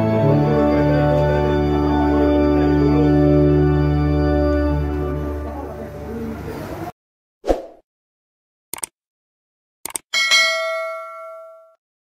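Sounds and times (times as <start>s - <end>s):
notification bell ding: 10.2s - 11.8s.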